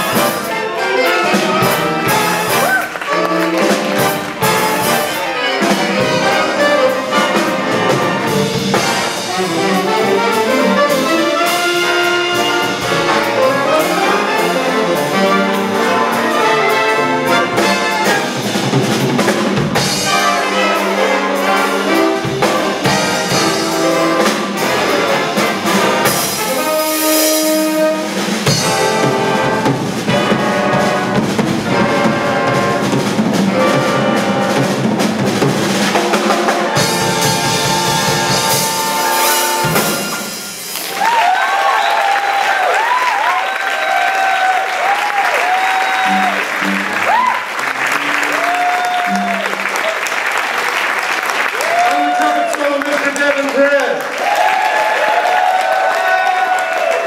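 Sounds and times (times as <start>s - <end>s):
audience applause and cheering: 0.0s - 33.6s, 35.3s - 57.0s
big band playing jazz: 0.0s - 57.0s.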